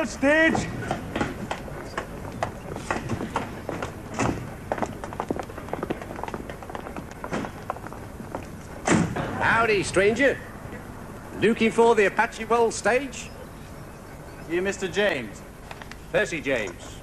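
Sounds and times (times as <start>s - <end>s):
footsteps on platform: 0.0s - 9.3s
carriage doors knocking: 0.5s - 7.9s.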